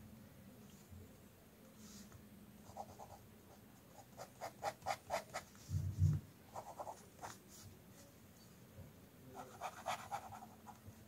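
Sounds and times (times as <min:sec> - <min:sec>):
pen scratching on paper: 0:04.0 - 0:05.6, 0:06.5 - 0:07.4, 0:09.4 - 0:10.8.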